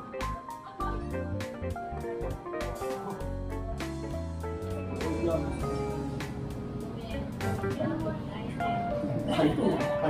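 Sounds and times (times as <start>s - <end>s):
melodic background music: 0.0s - 10.0s.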